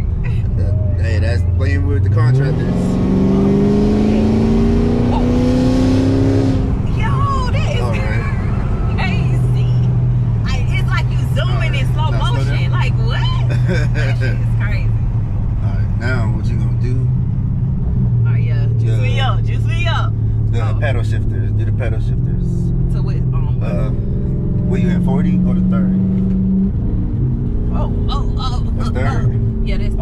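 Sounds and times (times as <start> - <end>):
voices talking: 0.0 - 5.6, 6.9 - 15.0, 15.6 - 17.1, 18.3 - 24.0, 24.6 - 26.0, 27.7 - 30.0
car engine heard from inside: 0.0 - 30.0.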